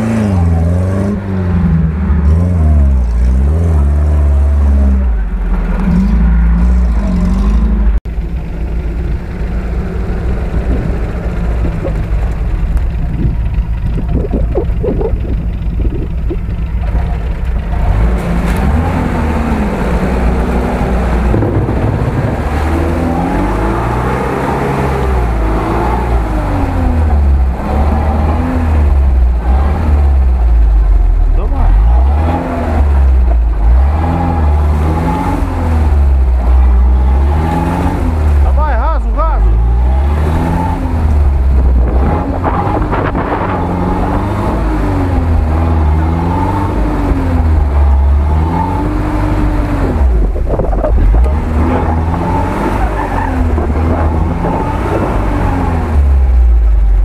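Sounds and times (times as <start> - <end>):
off-road vehicle engines revving: 0.0 - 57.0.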